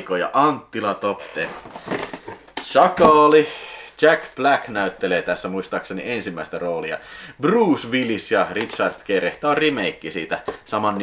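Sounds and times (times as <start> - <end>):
plastic cassette cases clattering: 1.3 - 3.1, 8.0 - 9.1.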